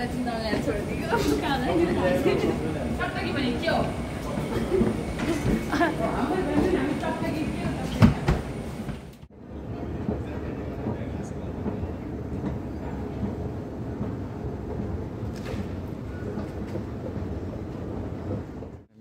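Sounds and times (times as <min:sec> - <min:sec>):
faint voices: 0:00.0 - 0:08.6
escalator rumbling: 0:00.0 - 0:19.0.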